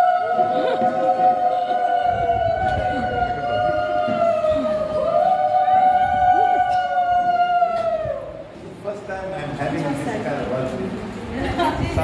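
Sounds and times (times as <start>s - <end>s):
women's high ululation: 0.0s - 8.5s.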